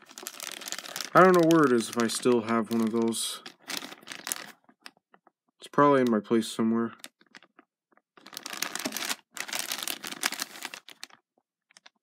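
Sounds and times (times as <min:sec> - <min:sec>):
plastic bags crinkling: 0:00.0 - 0:05.0, 0:07.0 - 0:12.0.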